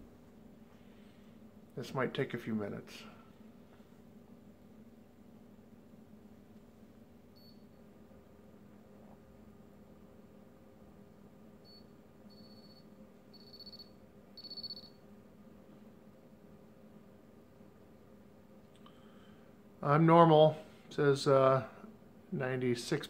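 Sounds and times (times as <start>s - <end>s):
faint room hum: 0.0s - 23.0s
thermometer beeping: 7.4s - 7.8s, 11.6s - 15.0s.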